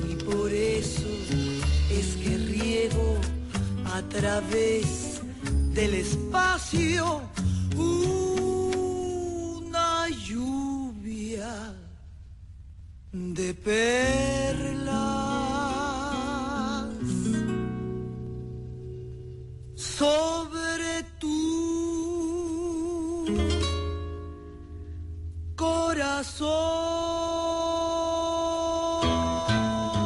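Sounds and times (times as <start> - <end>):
acoustic guitar accompaniment: 0.0 - 10.9, 13.4 - 30.0
woman singing with vibrato: 0.0 - 11.7.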